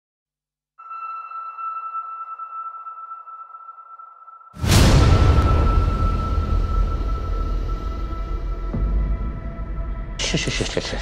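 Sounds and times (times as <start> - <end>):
high sonar-like tone: 0.8 - 9.5.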